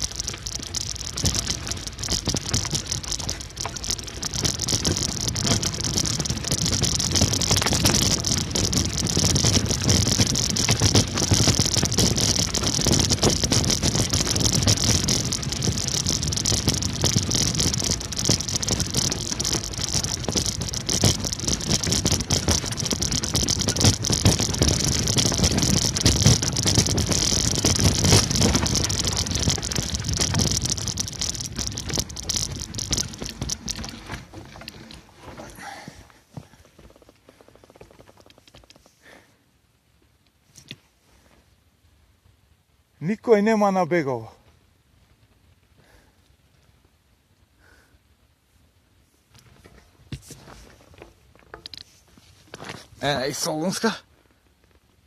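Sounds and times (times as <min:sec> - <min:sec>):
tyres crunching over gravel: 0:00.0 - 0:38.8, 0:49.4 - 0:54.0.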